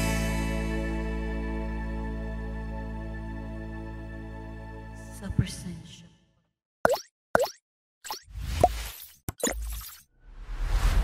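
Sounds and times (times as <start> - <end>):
cartoon plops: 6.8 - 10.0
whoosh with rising tone: 10.2 - 11.0.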